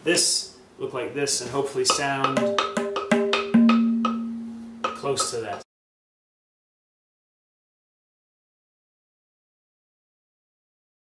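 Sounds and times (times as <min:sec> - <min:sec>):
tabla strokes: 0:01.9 - 0:05.0.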